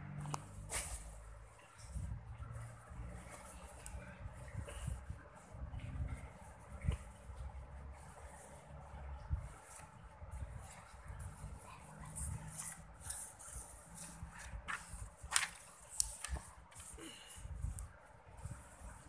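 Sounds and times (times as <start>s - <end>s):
paper sheets rustling and sliding: 12.5s - 17.3s.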